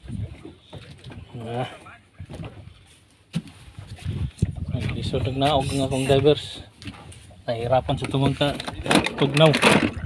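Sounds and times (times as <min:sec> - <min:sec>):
man talking: 0:04.6 - 0:06.7, 0:07.4 - 0:10.0.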